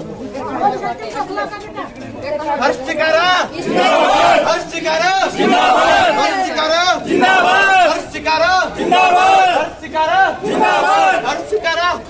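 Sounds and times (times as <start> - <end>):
crowd chatter: 0.0 - 12.0.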